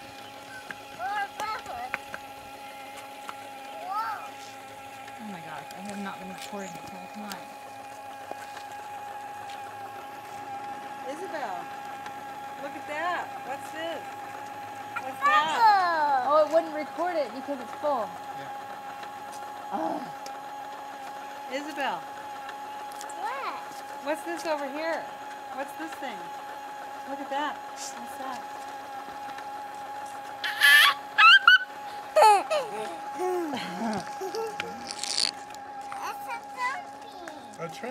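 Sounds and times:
toy motor and fan humming: 0.0 - 37.9
girl squealing: 30.4 - 33.5.

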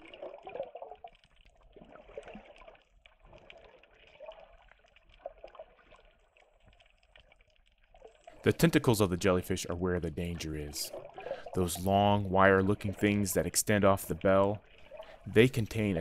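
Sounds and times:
underwater sloshing: 0.0 - 16.0.

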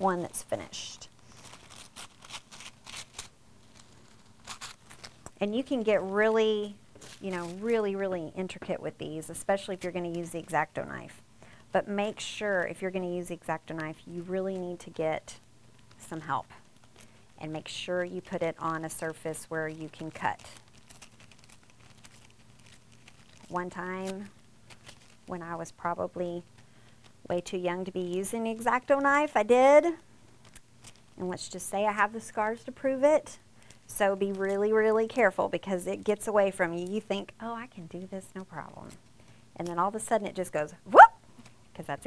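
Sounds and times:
low room hum: 0.0 - 42.0
tissue paper crinkling and tearing: 0.3 - 8.0, 18.2 - 25.4, 30.4 - 31.2.

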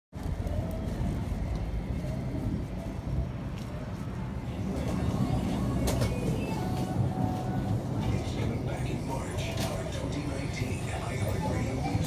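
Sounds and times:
traffic rumble: 0.1 - 12.0.

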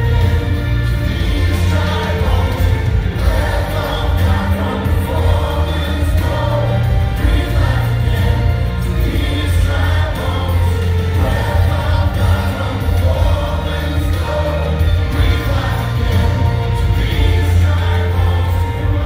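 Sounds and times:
band with steady bass line: 0.0 - 19.0
group singing worship song: 0.0 - 19.0.

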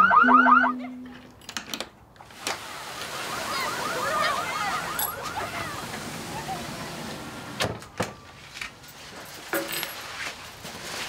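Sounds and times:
car alarm whooping: 0.0 - 0.9, 3.2 - 5.9.

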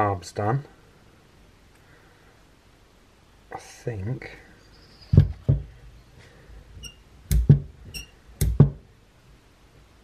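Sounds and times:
dull knocks on a workbench: 5.2 - 5.7, 7.3 - 7.7, 8.4 - 8.8.

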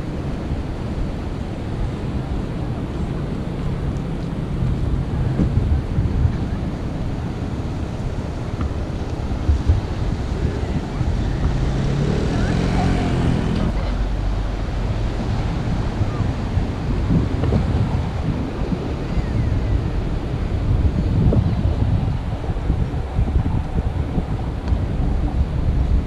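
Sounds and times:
ocean surf washing: 0.0 - 26.0
wind buffeting microphone: 0.0 - 26.0.

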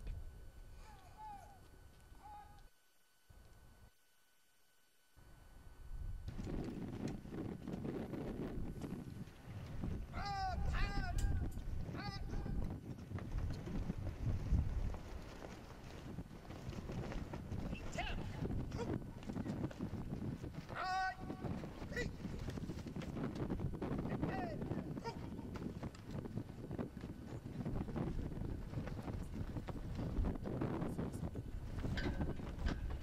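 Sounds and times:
wind rumbling on microphone: 5.5 - 33.0.

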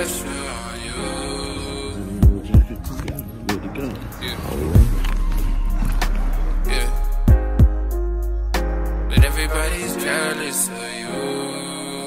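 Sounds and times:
music with heavy bass: 0.0 - 11.4.

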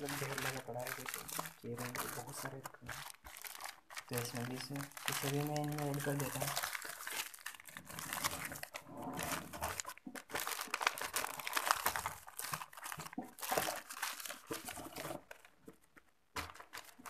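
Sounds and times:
paper rustling and crinkling: 0.0 - 17.0.

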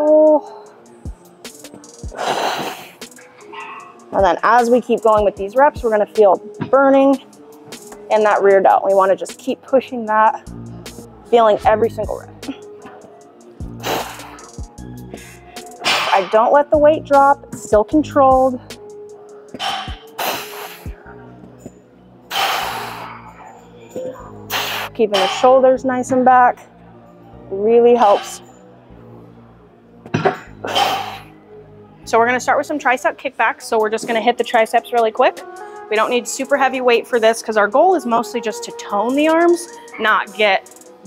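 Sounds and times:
background music: 0.0 - 41.0
woman exhaling forcefully: 2.1 - 2.9
woman breathing out forcefully: 2.1 - 4.0, 13.8 - 14.5, 15.1 - 16.1, 19.7 - 21.2, 22.3 - 23.4, 24.2 - 25.0.

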